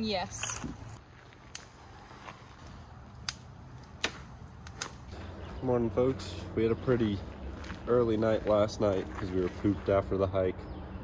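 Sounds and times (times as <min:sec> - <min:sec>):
campfire crackling: 0:00.0 - 0:10.0
sharp fire pops: 0:03.1 - 0:05.1.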